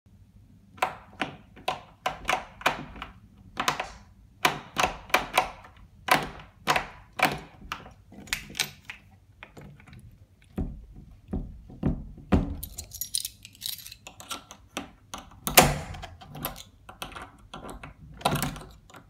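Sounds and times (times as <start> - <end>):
door lock knob clicking: 0.8 - 9.0.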